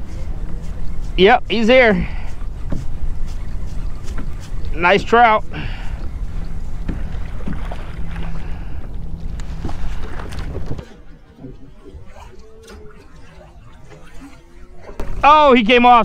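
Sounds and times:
low hum: 0.0s - 16.0s
wind and water rushing: 0.0s - 16.0s.

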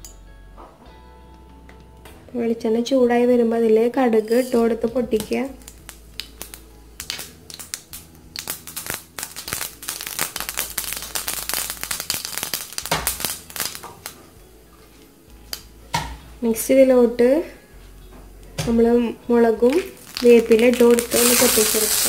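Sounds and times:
mustard seeds popping in hot oil: 4.6s - 14.4s, 15.3s - 16.6s, 18.5s - 22.0s.

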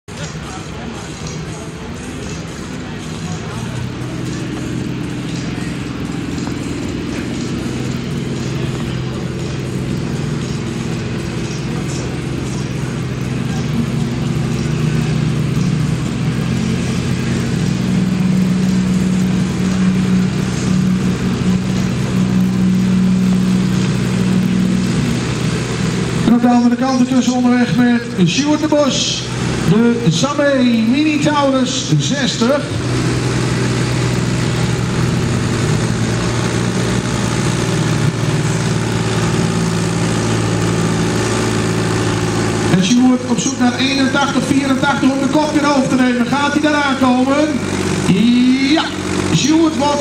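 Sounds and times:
tractor diesel engine under load: 0.0s - 50.0s.

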